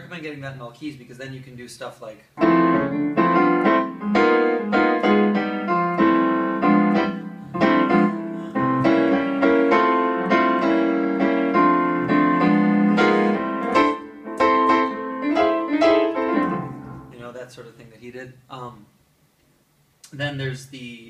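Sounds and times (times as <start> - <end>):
jazz piano chords: 2.4 - 17.4.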